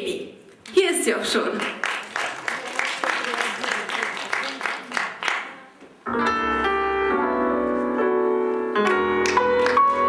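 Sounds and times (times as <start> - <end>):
keyboard chords: 6.0 - 10.0.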